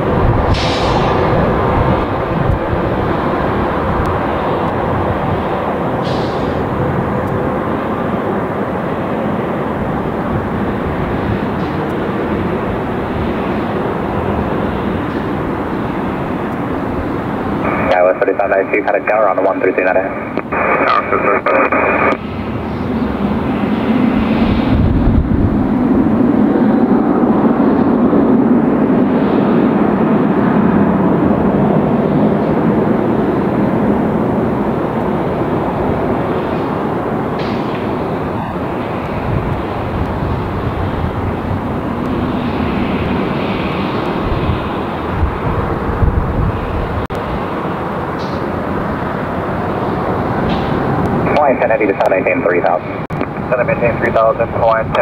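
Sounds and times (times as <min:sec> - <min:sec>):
jet engines roaring: 0:00.0 - 0:55.0
air traffic control radio call: 0:17.6 - 0:22.2, 0:51.1 - 0:55.0.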